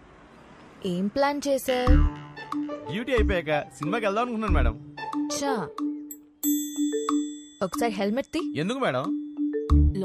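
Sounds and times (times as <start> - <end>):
bright bell-like chime: 6.4 - 7.7.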